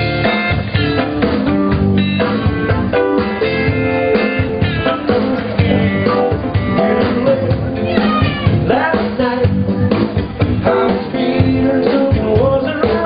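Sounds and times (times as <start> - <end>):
drum kit: 0.0 - 13.0
electric guitars picking melodies: 0.0 - 13.0
keyboard: 0.0 - 13.0.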